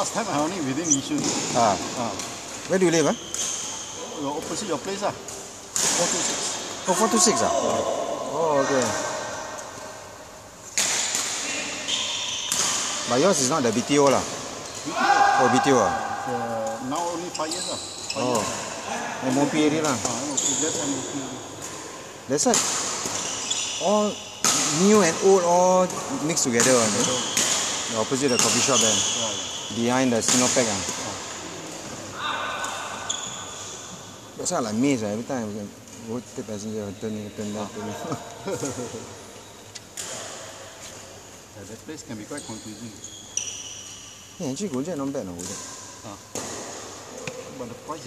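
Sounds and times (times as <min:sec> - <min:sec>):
shoes squeaking on floor: 0:00.0 - 0:07.5, 0:11.5 - 0:15.8, 0:16.8 - 0:18.7, 0:19.3 - 0:21.3, 0:23.0 - 0:25.4, 0:26.3 - 0:30.9, 0:33.0 - 0:34.1, 0:36.6 - 0:40.0, 0:42.0 - 0:44.5
sports hall background: 0:00.0 - 0:48.0
racket smacking shuttlecock: 0:10.7 - 0:13.1.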